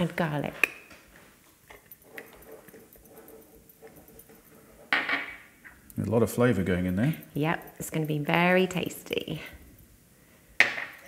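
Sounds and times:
spatula scraping: 1.7 - 4.9.

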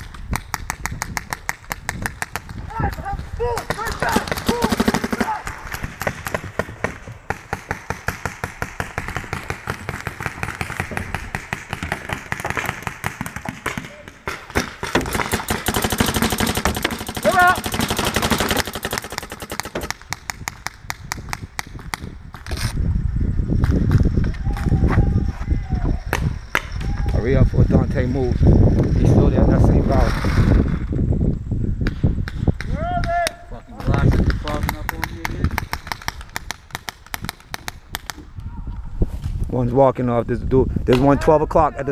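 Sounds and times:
paintball markers firing: 0.0 - 22.7, 31.8 - 38.3.

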